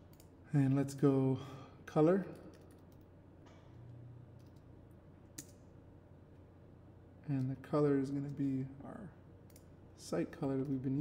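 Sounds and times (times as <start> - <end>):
computer keyboard keystrokes: 2.4 - 3.1.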